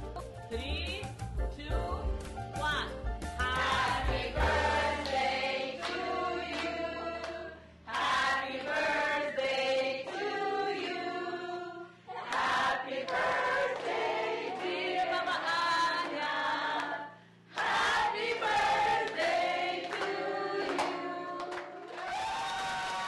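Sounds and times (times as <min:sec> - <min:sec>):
choir singing: 0:03.4 - 0:21.6.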